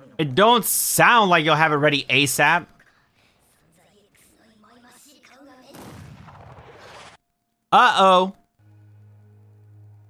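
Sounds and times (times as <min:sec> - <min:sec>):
character speaking: 0:00.1 - 0:02.7, 0:07.8 - 0:08.4
artillery explosions: 0:05.7 - 0:07.2.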